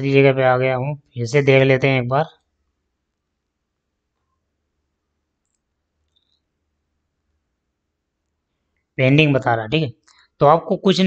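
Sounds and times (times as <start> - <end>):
faint clicks: 5.4 - 6.5.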